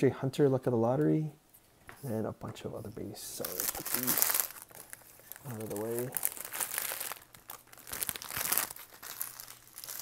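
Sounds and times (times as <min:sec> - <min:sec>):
foil wrapper crinkling: 0:03.2 - 0:10.0.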